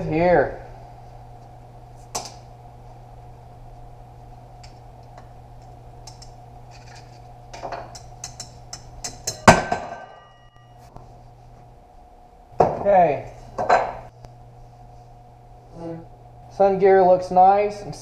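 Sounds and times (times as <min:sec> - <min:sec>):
loud metal clank ringing: 0:09.2 - 0:10.7.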